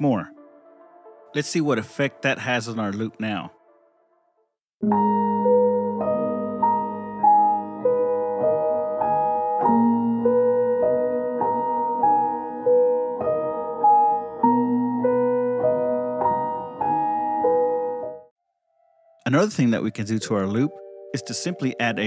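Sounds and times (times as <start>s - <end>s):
slowed piano loop: 4.8s - 18.3s, 19.0s - 22.0s.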